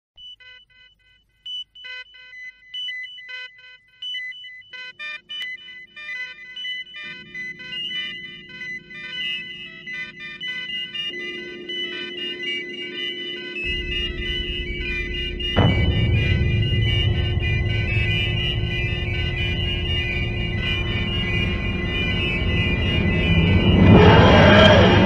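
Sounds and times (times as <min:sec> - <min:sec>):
irregular electronic beeps: 0:00.2 - 0:25.0
steady electronic hum: 0:03.6 - 0:25.0
low rumble: 0:13.7 - 0:25.0.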